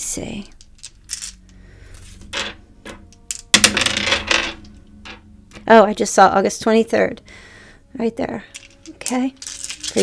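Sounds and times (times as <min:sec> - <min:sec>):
dice clattering on hard surface: 0:00.4 - 0:01.6, 0:02.4 - 0:05.2, 0:08.5 - 0:10.0.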